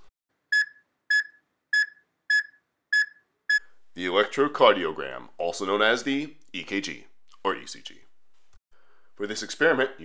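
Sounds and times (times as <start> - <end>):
high electronic beeps: 0.5 - 3.6.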